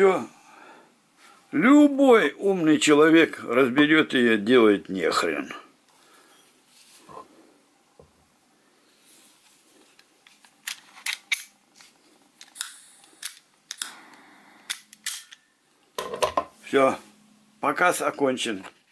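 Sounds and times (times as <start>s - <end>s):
metallic clicks of lighter parts: 12.4s - 15.5s.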